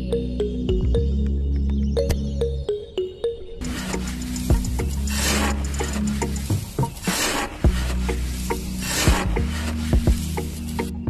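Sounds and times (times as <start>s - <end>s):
background music: 0.0s - 11.0s
metal scoop scraping sand: 3.6s - 11.0s.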